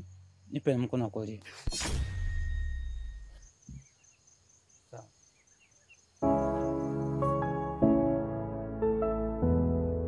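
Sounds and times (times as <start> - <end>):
sharp thud: 1.6 - 3.8.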